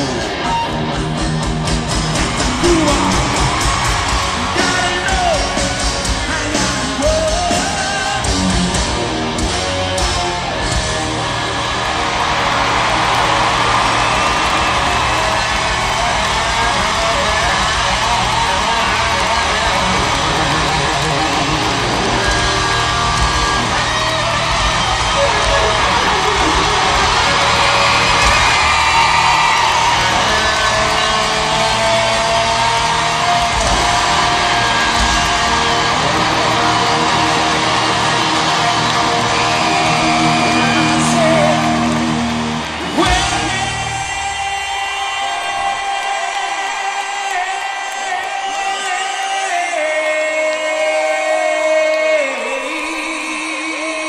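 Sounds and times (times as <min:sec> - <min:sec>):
live rock band playing: 0:00.0 - 0:46.0
electric guitar: 0:00.0 - 0:48.8
crowd yelling and whooping: 0:00.0 - 0:54.0.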